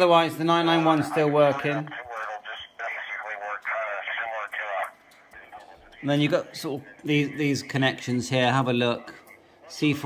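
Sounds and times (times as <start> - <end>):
radio speech through loudspeaker: 0.0 - 10.0.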